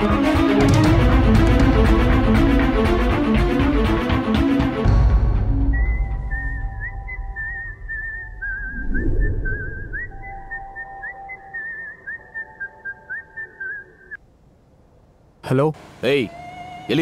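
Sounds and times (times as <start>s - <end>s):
whistled melody: 5.5s - 14.2s
low rumble: 7.0s - 11.3s.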